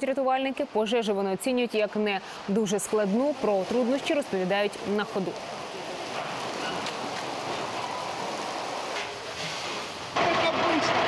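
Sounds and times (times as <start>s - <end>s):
fire hose water spraying: 0.0s - 11.0s.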